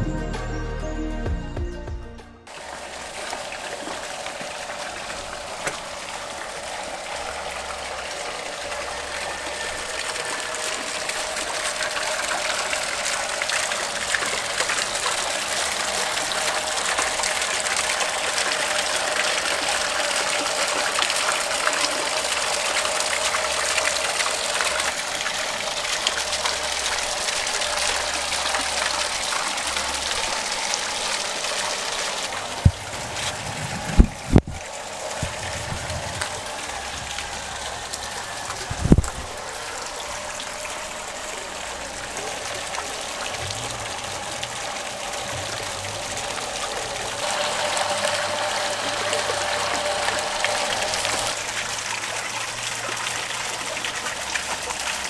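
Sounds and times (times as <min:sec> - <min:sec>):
water pouring into pond: 0:02.5 - 0:55.0
dull low thumps: 0:32.6 - 0:36.2.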